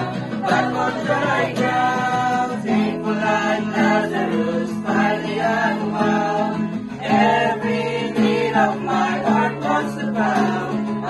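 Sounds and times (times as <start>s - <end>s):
acoustic guitar playing: 0.0s - 11.0s
group of voices singing: 0.0s - 11.0s.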